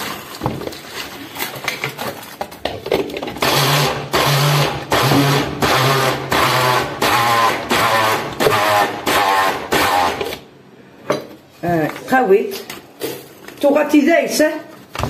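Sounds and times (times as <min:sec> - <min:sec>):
blender motor whirring in pulses: 0:03.4 - 0:10.4.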